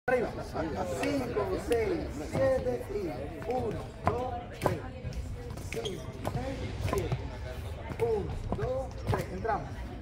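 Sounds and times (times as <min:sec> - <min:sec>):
man counting: 0:00.1 - 0:04.5.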